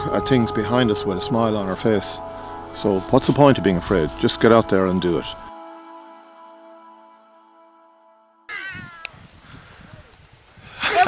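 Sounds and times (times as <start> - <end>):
soft music: 0.0 - 8.5
high-pitched falling cry: 8.5 - 9.3.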